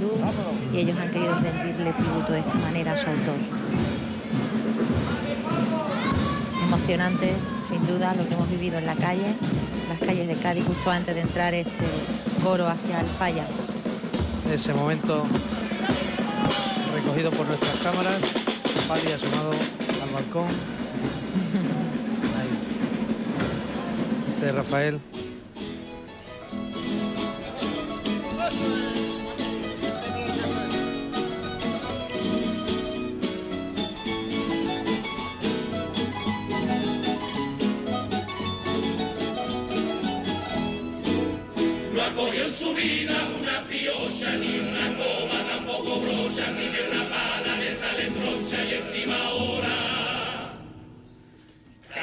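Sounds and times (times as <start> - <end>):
music: 0.0 - 52.0
lutes and guitars playing: 24.0 - 51.8
male choir singing: 41.7 - 50.8.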